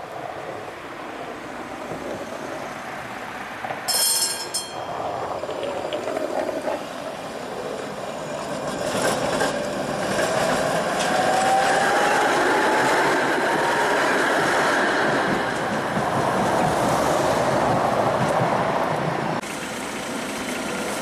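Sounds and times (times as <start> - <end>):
tram wheels on rails: 0.0 - 21.0.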